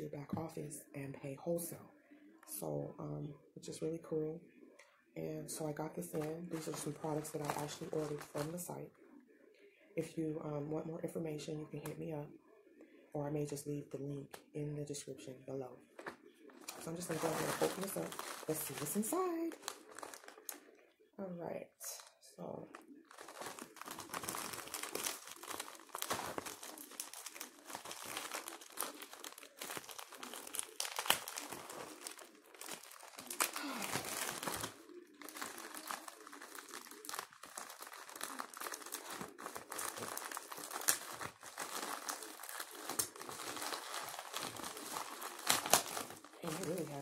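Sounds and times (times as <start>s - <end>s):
plastic bag crinkling: 5.5s - 8.8s, 15.8s - 20.8s, 21.9s - 47.0s.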